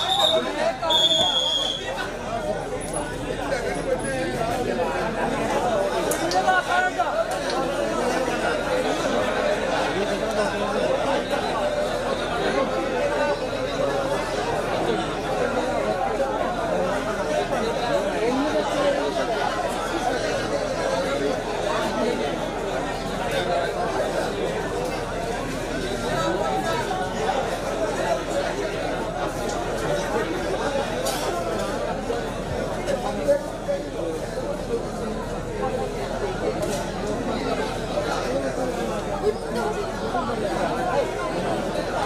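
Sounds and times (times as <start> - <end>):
crowd chatter: 0.0 - 42.0.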